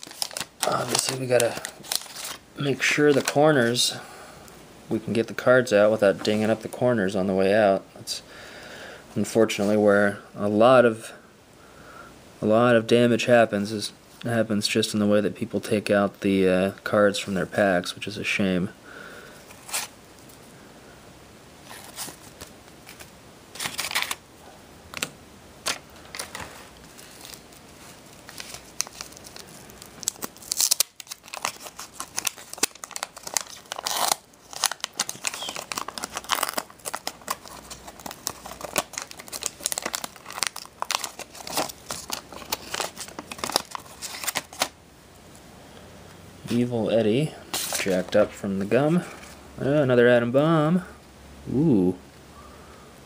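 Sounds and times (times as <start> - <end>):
wax paper wrapper crinkling and tearing: 0.0 - 3.8, 21.7 - 24.2, 25.0 - 44.8, 47.5 - 48.4.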